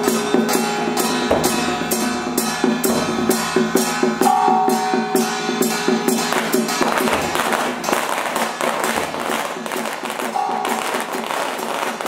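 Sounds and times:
drum and percussion music: 0.0 - 12.0.

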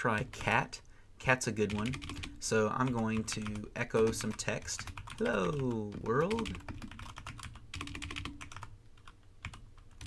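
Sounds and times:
keyboard typing clicks: 3.2 - 10.0.

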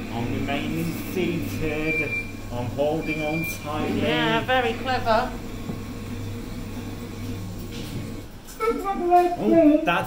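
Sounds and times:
ride motor humming: 0.0 - 8.3.

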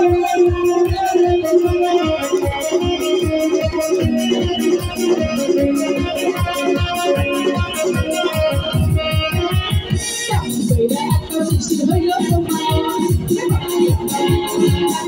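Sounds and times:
electronic keyboard melody: 0.0 - 15.0.

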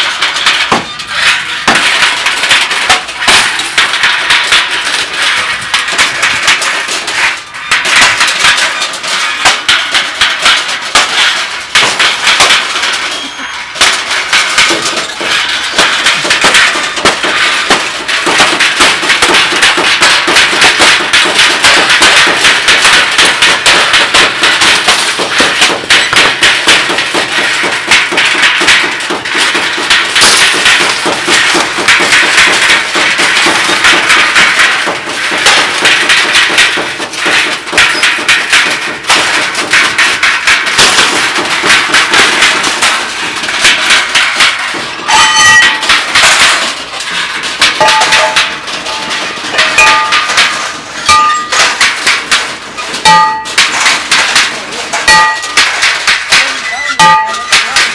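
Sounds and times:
strikers beating on scrap metal: 0.0 - 57.9.

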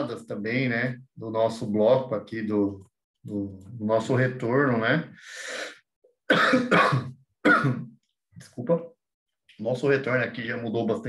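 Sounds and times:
man coughing: 6.3 - 7.9.

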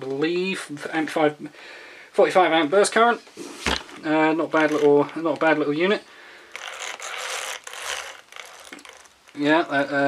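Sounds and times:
toy car gears rasping and clicking: 4.6 - 5.0, 6.5 - 9.8.

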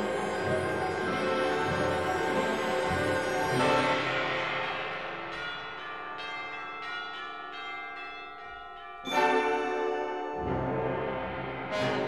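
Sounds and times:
orchestral bell-like music: 0.0 - 12.0.

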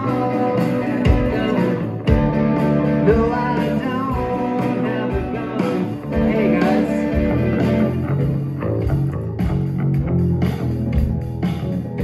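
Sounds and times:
drum kit: 0.0 - 12.0
electric bass: 0.0 - 12.0
electric guitars: 0.0 - 12.0.

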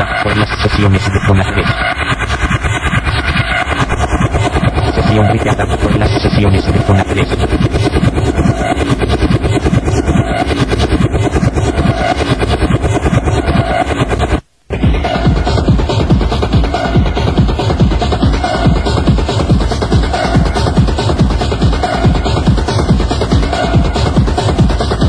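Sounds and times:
fast techno track: 0.0 - 25.0.

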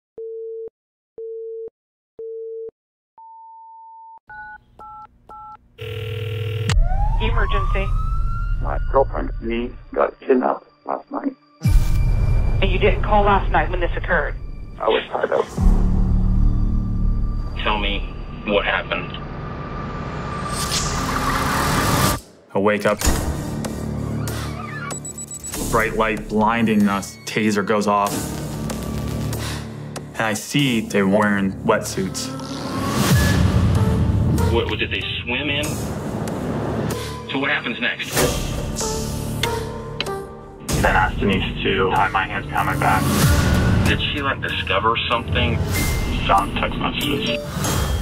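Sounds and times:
keypad dialing tones: 0.2 - 6.6
rushing noise riser: 17.6 - 22.4, 32.2 - 34.7.

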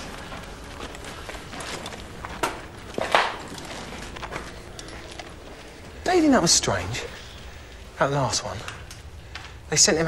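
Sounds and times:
footsteps scuffling on rubble: 0.0 - 5.9
steady low background noise: 0.0 - 10.0.

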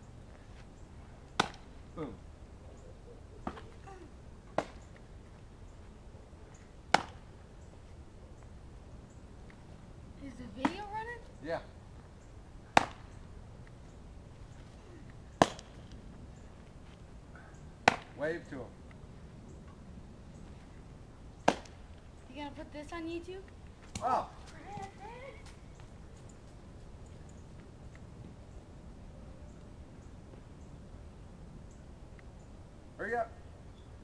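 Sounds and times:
baseball popping into leather glove: 1.4 - 1.7, 12.7 - 13.1, 15.4 - 16.0, 17.8 - 18.2, 21.4 - 21.8.

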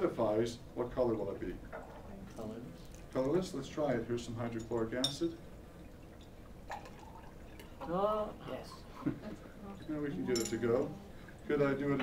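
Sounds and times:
liquid pouring: 1.2 - 7.8.

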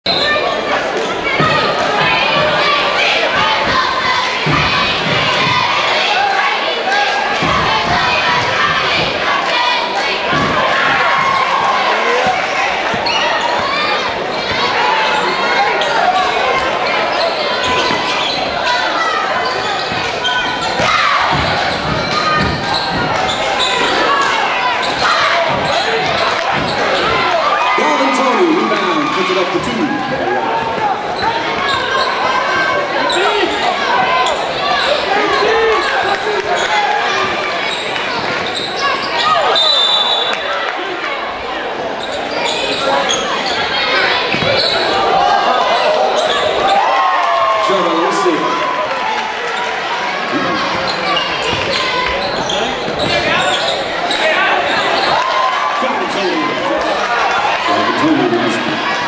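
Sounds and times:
crowd voices: 0.0 - 59.0.

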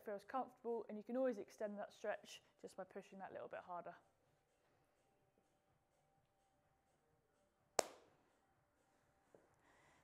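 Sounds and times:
hand clap: 7.8 - 8.0.

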